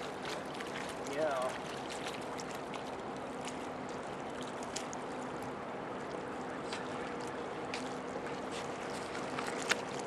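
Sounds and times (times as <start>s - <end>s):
ship engine hum: 0.0s - 10.0s
soft wash of noise: 0.0s - 10.0s.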